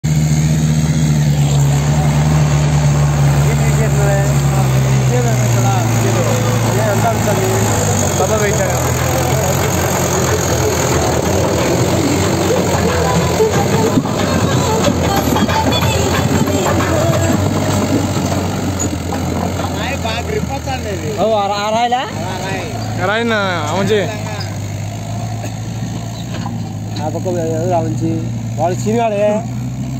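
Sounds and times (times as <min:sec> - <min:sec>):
tractor diesel engine running: 0:00.0 - 0:29.9.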